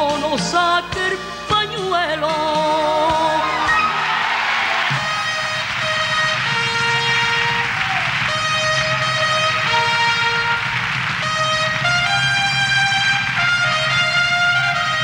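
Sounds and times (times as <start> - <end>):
orchestral band: 0.0 - 15.0
trumpets playing held chords: 3.3 - 15.0.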